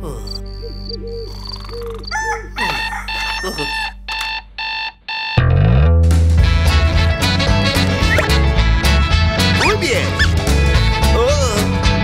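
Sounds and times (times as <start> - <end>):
alarm clock beeping: 0.7 - 5.5
cartoon rooster crowing: 2.0 - 4.0.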